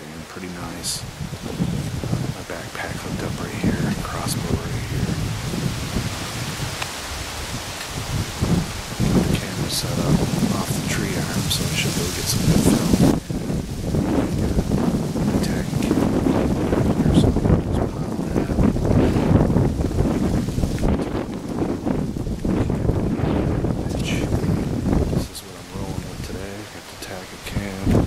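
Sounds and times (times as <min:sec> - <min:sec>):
leaves rustling: 0:00.0 - 0:28.0
wind buffeting microphone: 0:00.0 - 0:28.0.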